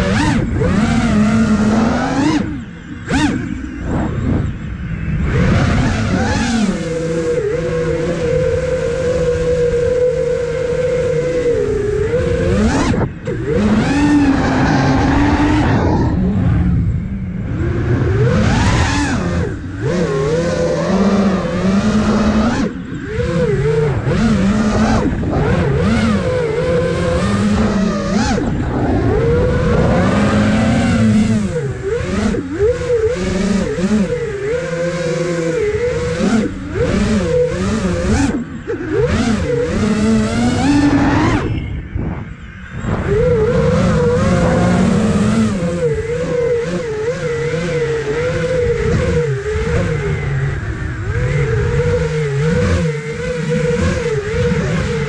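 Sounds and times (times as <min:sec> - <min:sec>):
drone motors and propellers whining: 0:00.0 - 0:55.0.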